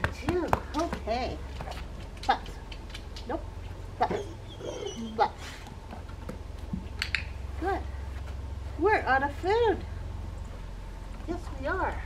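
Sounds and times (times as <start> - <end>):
puppy vocalizing: 4.0 - 5.6
puppy high whine: 4.0 - 5.7.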